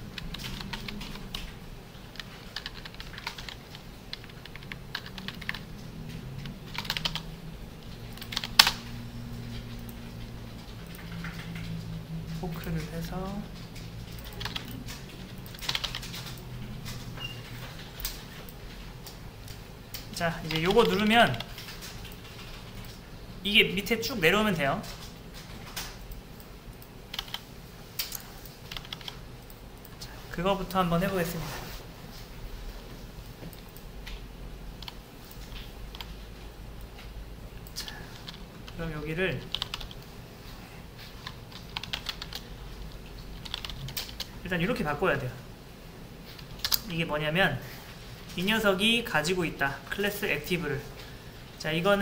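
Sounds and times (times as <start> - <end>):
typing on computer keyboard: 0.0 - 23.0, 24.8 - 29.6, 34.8 - 36.2, 37.0 - 38.8, 39.4 - 40.1, 41.1 - 44.4, 46.4 - 46.8.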